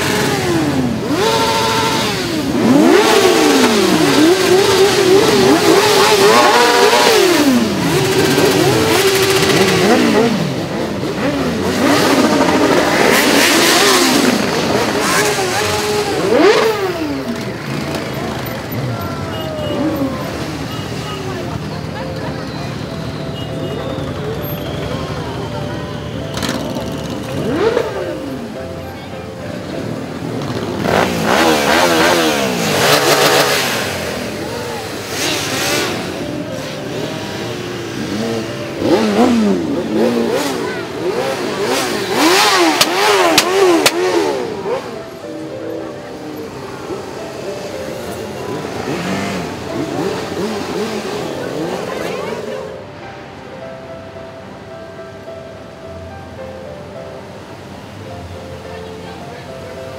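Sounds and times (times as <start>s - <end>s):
motorcycles revving past: 0.0s - 21.7s, 26.3s - 28.6s, 29.8s - 47.4s, 48.0s - 52.7s.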